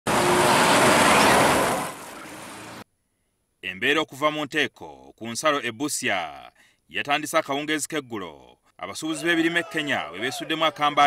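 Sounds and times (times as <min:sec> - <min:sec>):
road traffic rush: 0:00.0 - 0:02.8.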